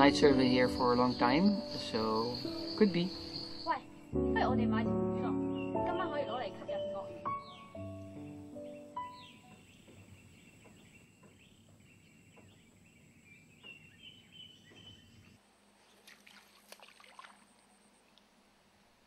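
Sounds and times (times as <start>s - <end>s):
thin bird calls: 5.3s - 18.2s.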